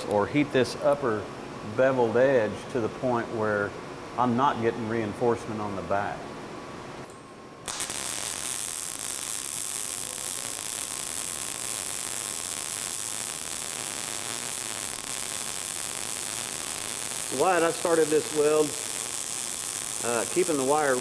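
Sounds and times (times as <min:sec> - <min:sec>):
welding arc: 0:07.6 - 0:21.0.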